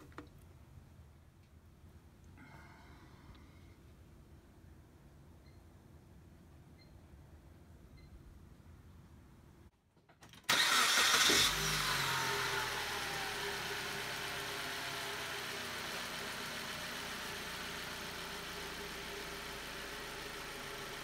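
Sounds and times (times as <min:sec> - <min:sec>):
engine starting and idling: 0:10.3 - 0:21.0.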